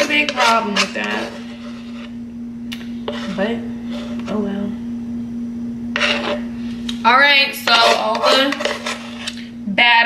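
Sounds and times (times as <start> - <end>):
utensil scraping wooden bowl: 0.0 - 2.2, 3.0 - 4.4, 5.9 - 6.6, 7.5 - 9.4
low hum: 0.0 - 9.8.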